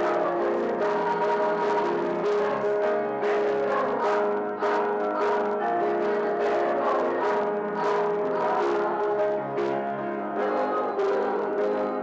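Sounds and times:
youth choir singing: 0.0s - 12.0s.

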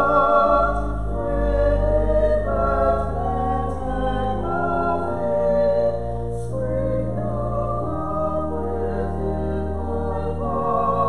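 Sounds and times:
steady low accompaniment: 0.0s - 11.0s
voices singing a hymn: 0.0s - 11.0s.

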